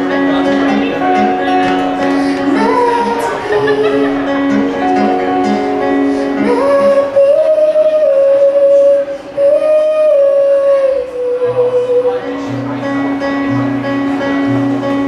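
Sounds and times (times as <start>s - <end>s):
acoustic guitar playing: 0.0s - 15.0s
woman singing long notes: 2.1s - 12.5s.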